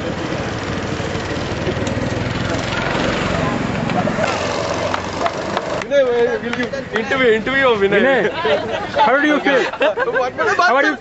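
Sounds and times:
go-kart engines running: 0.0 - 10.8
people talking: 5.8 - 11.0.

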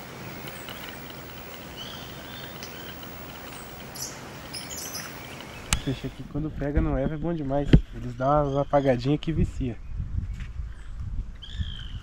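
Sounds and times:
birds chirping: 0.0 - 9.2
outdoor ambience: 0.0 - 12.0
sharp clicks: 0.3 - 4.2.

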